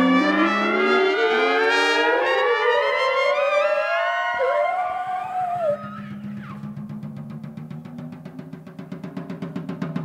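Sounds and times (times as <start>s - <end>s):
rapid drum roll: 5.6s - 10.0s.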